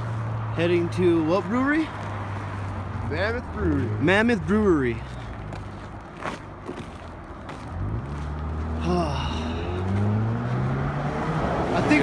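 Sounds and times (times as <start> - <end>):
road traffic rumbling: 0.0 - 12.0
vehicle engine speeding up: 7.6 - 12.0.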